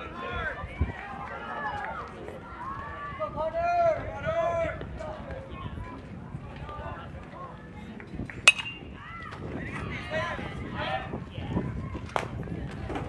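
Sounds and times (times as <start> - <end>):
metal bat hitting ball: 8.5 - 8.9.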